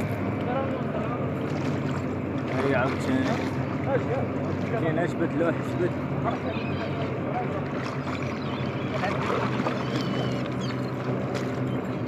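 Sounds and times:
low engine hum: 0.0 - 12.0
sea and wind noise: 0.0 - 12.0.

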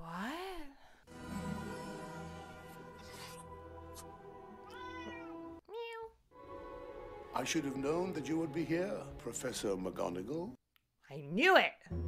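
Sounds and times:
orchestral film music: 1.1 - 5.6, 6.4 - 10.5
cat meowing: 4.6 - 6.2.

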